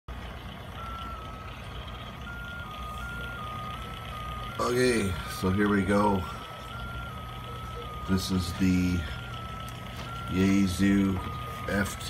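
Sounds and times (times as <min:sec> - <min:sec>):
low steady hum: 0:00.1 - 0:12.0
thin electronic stepping tone: 0:00.1 - 0:12.0.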